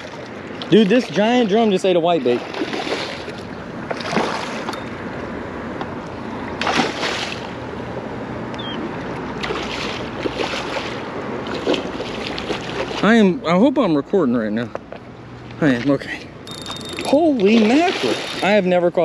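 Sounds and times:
water noise: 0.0 - 14.5, 15.1 - 19.0
wind: 0.0 - 19.0
fish splashing at water surface: 2.2 - 4.7, 6.6 - 7.6, 9.4 - 13.1, 16.9 - 18.6.

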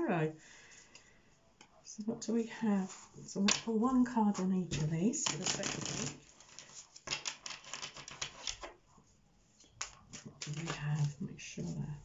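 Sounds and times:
cards shuffling: 4.4 - 8.8, 9.6 - 11.2.

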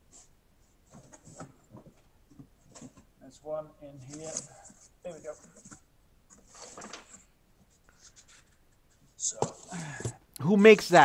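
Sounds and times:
faint scratchy rustles of box: 3.8 - 10.2.

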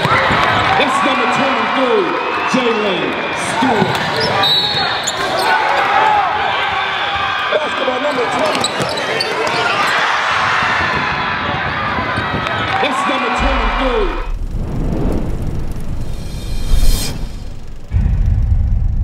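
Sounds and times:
crowd noise in gym: 0.0 - 14.3
deep boom: 13.4 - 19.0
low rumble: 13.4 - 19.0
rising whoosh: 13.4 - 19.0.

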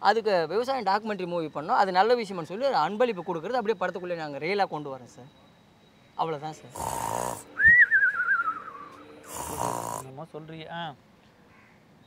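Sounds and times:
man snoring: 6.7 - 7.5, 9.2 - 10.1
wavering whistle: 7.4 - 9.4.

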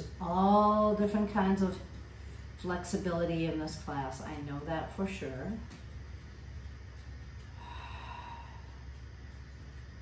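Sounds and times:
steady low hum: 0.0 - 10.0
soft breathy exhale: 7.6 - 8.7.

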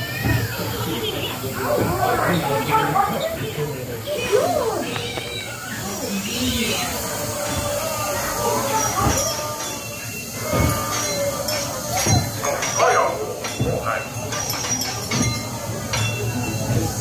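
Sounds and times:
voices: 0.0 - 17.0.

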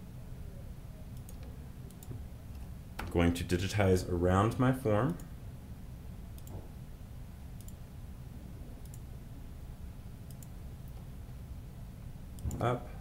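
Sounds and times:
low room hum: 0.0 - 13.0
computer mouse clicking: 1.2 - 2.2, 6.4 - 6.6, 7.6 - 7.8, 8.8 - 9.1, 10.2 - 11.0, 12.4 - 12.6.

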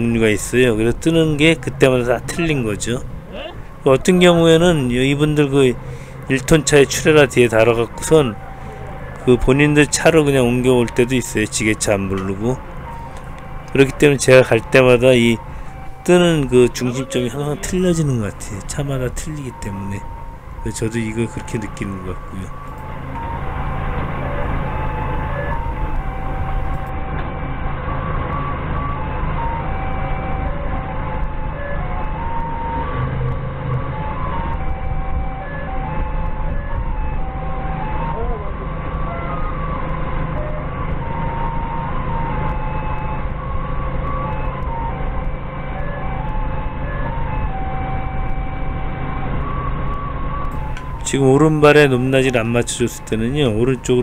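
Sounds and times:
forklift engine running: 0.0 - 36.0, 38.6 - 54.0
electronic warning melody: 0.0 - 54.0.

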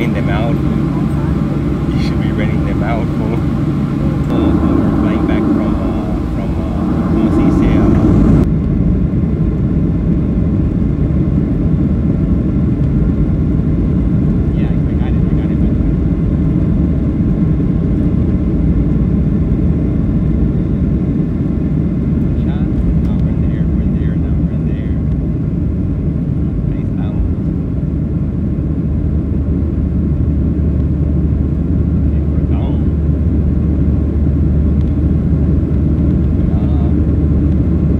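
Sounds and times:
deep steady hum: 0.0 - 9.5
jet engines rumbling in cabin: 0.0 - 37.9.

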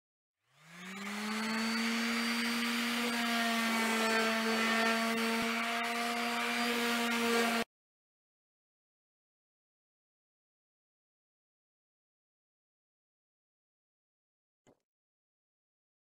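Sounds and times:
orbital sander running: 0.5 - 7.7.

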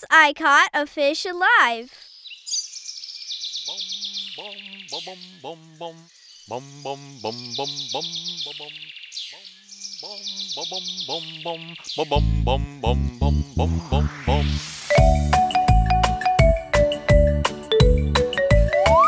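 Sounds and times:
cartoon birdsong chirps and trills: 1.9 - 14.7
person singing bouncy syllables: 4.4 - 8.9, 10.0 - 14.6.

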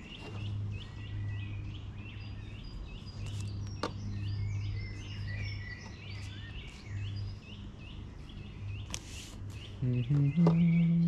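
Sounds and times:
birds singing and chirping: 0.0 - 11.0
low steady hum: 0.0 - 11.0.

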